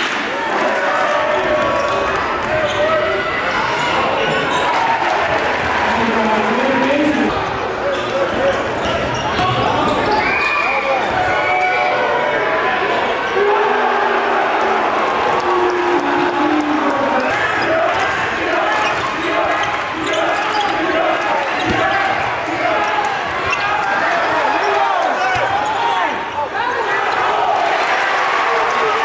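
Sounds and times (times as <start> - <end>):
crowd and players shouting: 0.0 - 29.0.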